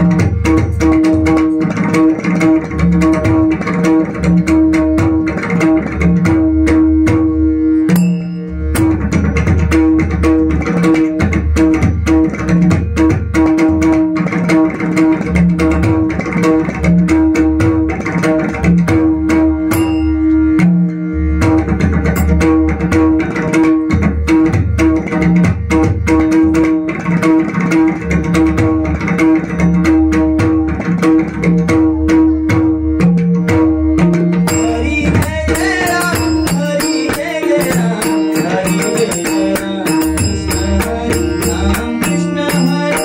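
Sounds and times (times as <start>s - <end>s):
double-headed drum played fast: 0.0s - 43.0s.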